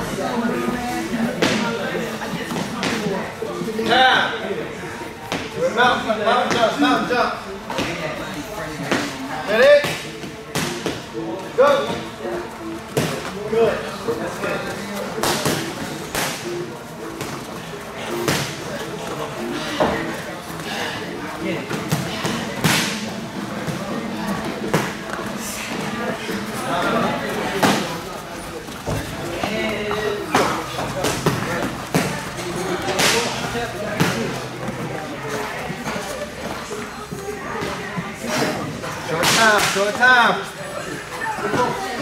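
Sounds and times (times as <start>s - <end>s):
background music: 0.0s - 39.2s.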